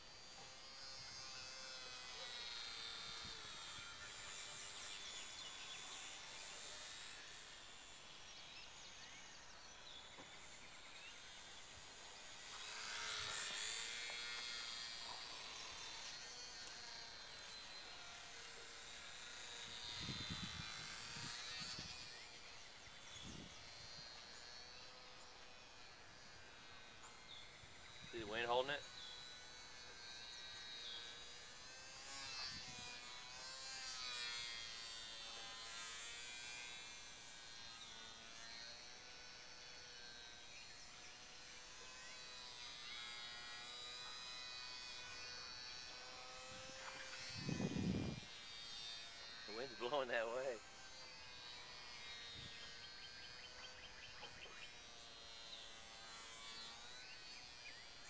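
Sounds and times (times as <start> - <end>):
rc plane motor whining: 0.0 - 58.0.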